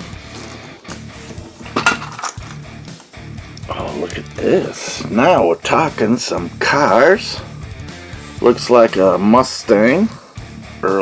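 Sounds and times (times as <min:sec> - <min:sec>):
background guitar music: 0:00.0 - 0:11.0.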